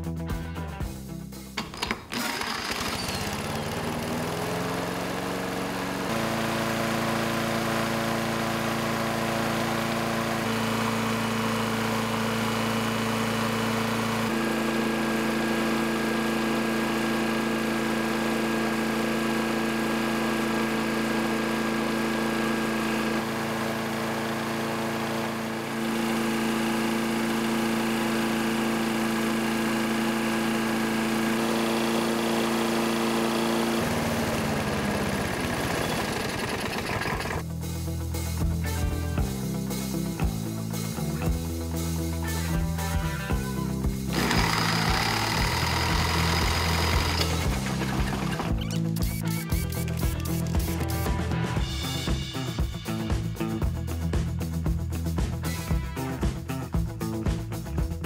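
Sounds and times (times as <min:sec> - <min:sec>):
lawn mower engine running: 0:01.5 - 0:58.0
engine winding down: 0:01.6 - 0:37.6, 0:40.0 - 0:56.3.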